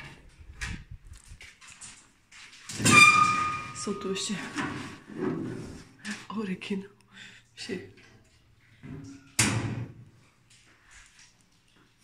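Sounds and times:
soft irregular footsteps: 0.2s - 2.7s.

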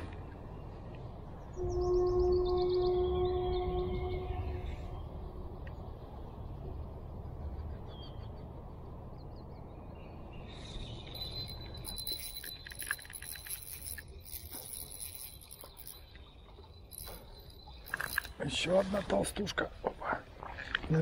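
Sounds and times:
fishing reel ticking and whining: 11.2s - 16.1s, 16.9s - 18.3s.

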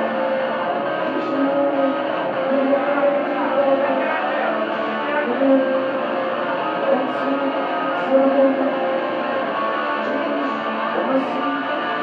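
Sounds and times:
metal electric guitar: 0.0s - 12.0s.

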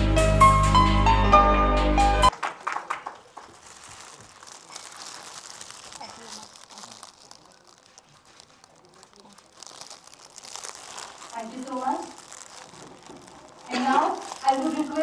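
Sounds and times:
plastic wrapping crinkling: 2.3s - 15.0s.

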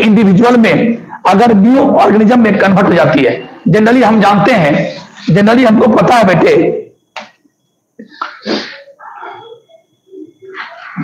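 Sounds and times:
man's sharp burst of breath: 8.2s - 8.9s.

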